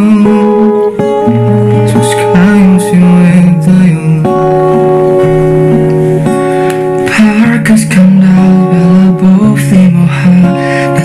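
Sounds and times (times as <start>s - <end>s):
acoustic guitar: 0.0s - 11.0s
person singing: 0.0s - 11.0s.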